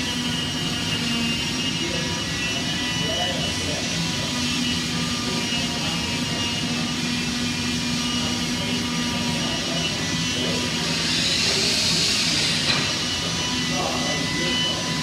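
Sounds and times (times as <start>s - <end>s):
wood-shop machinery droning: 0.0s - 15.0s.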